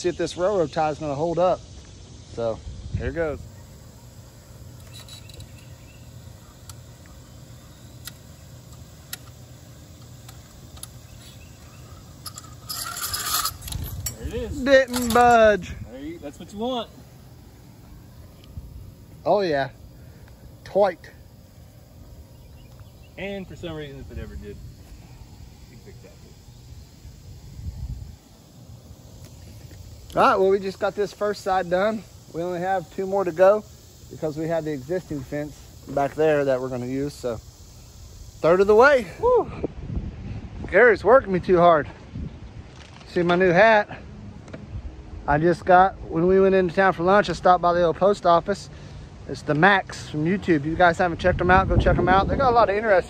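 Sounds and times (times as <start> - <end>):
wind buffeting microphone: 2.6 - 3.5, 13.5 - 16.6, 27.0 - 28.9, 39.2 - 42.7, 50.9 - 53.0
chain and wire scraping rattle: 4.8 - 5.7, 10.8 - 15.8.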